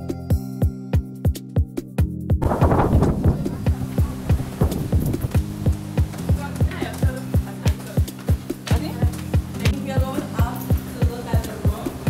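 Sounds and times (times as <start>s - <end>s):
electronic music with kick drum: 0.0s - 11.9s
rustling noise: 2.4s - 9.7s.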